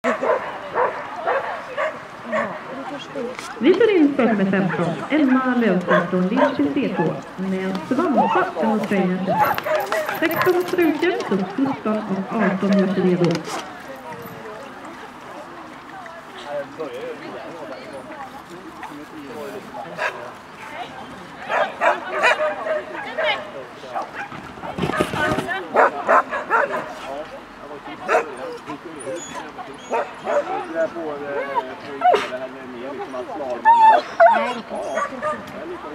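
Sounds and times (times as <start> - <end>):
dog barking: 0.0 - 2.6, 5.9 - 7.1, 21.5 - 23.4, 25.7 - 26.9, 28.1 - 28.4, 29.9 - 30.6, 34.9 - 35.5
dog barking and yipping: 5.9 - 7.2, 29.8 - 30.7.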